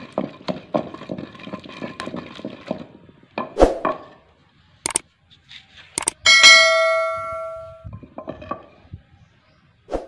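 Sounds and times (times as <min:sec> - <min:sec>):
sharp click: 0:04.8 - 0:05.0, 0:06.0 - 0:06.2
bright bell ding: 0:06.3 - 0:07.9.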